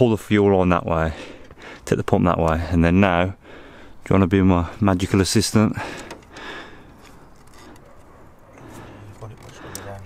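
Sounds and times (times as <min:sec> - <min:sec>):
faint rustling: 0:04.7 - 0:10.0.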